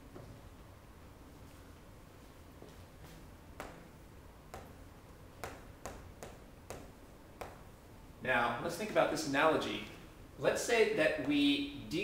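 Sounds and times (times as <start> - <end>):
chalk tapping on chalkboard: 4.5 - 4.8, 5.4 - 7.7.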